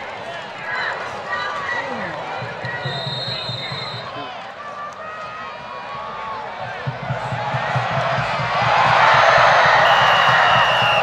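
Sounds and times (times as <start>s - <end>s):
low repeated thumps: 6.6s - 10.9s.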